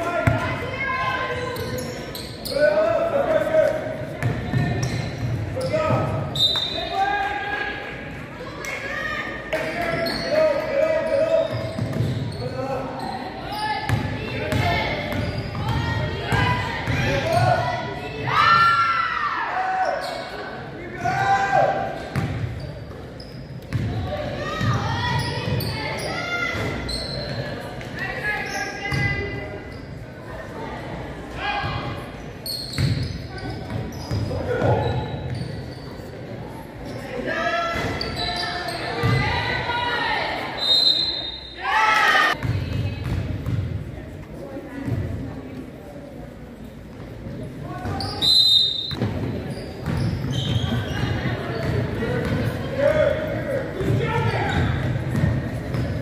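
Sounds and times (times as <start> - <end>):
voices and shouts echoing: 0.0 - 56.0
basketball bouncing on gym floor: 22.1 - 22.5, 23.7 - 24.0, 42.4 - 43.8, 48.9 - 52.5, 53.8 - 56.0.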